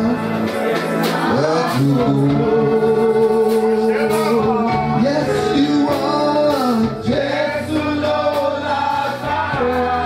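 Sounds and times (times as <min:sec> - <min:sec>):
gospel choir singing: 0:00.0 - 0:10.0
instrumental backing: 0:00.0 - 0:10.0.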